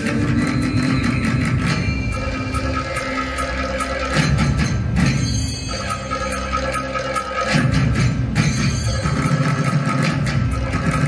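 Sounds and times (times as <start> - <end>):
percussion beat: 0.0 - 11.0.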